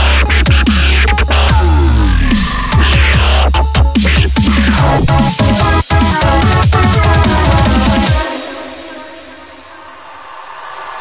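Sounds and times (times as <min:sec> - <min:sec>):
white-noise sweep: 0:04.0 - 0:11.0.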